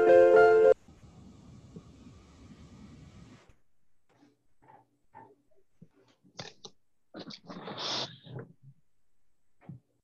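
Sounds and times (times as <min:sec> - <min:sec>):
faint steady hiss: 0:00.0 - 0:03.6.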